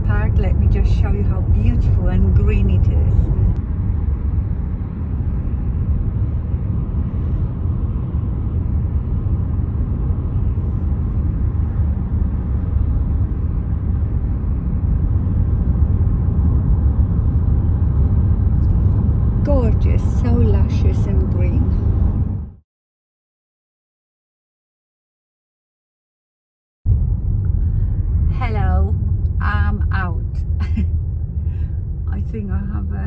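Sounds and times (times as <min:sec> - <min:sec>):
car cabin road rumble: 0:00.0 - 0:22.6, 0:26.9 - 0:33.0.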